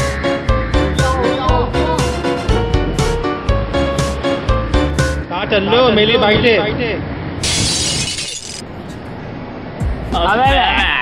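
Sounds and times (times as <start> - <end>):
crashing shattering noise: 7.4 - 8.7.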